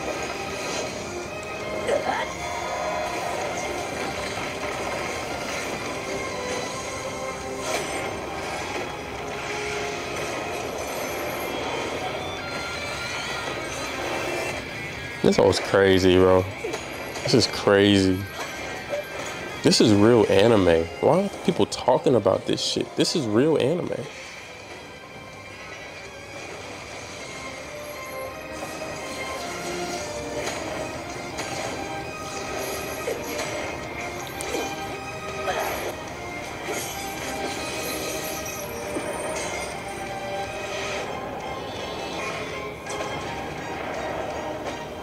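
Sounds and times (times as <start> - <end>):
background music: 0.0 - 45.0.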